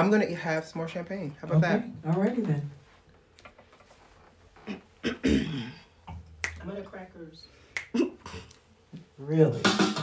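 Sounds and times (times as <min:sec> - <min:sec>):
person clearing throat: 0:04.6 - 0:05.9, 0:07.9 - 0:08.5.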